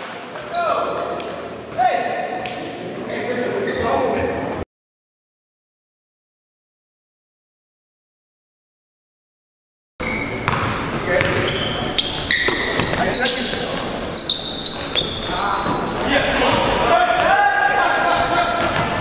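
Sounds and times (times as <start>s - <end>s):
sneakers squeaking on hardwood: 0.0s - 0.9s, 3.1s - 4.2s, 10.0s - 17.4s
basketball dribbling: 10.0s - 13.2s
players calling out: 11.0s - 19.0s.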